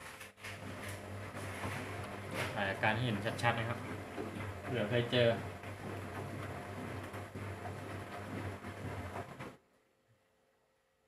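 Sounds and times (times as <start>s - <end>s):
washing machine running: 0.0s - 9.6s.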